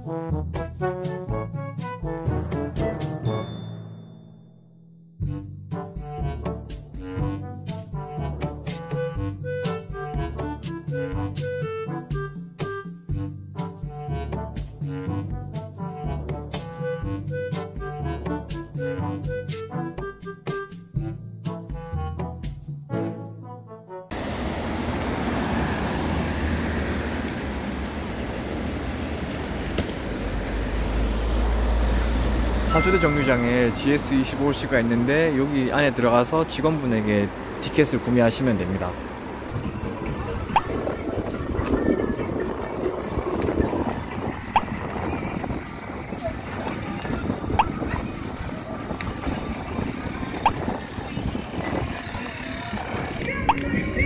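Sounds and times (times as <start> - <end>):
instrumental background music: 0.0 - 24.1, 32.6 - 38.9, 39.5 - 54.0
traffic hiss: 24.2 - 39.6.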